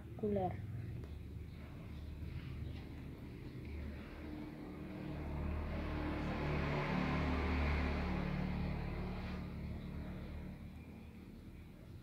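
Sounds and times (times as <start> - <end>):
vehicle passing by: 1.4 - 12.0.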